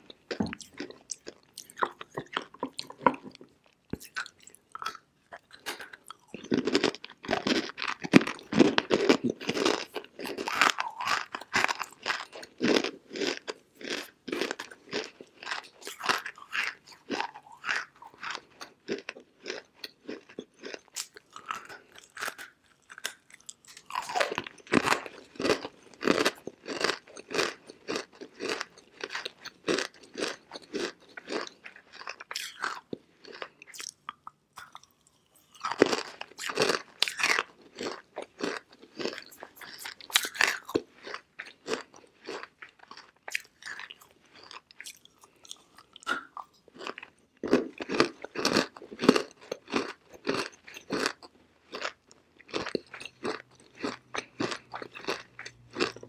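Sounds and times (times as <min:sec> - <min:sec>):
clay being chewed with crunches: 0:00.0 - 0:56.0.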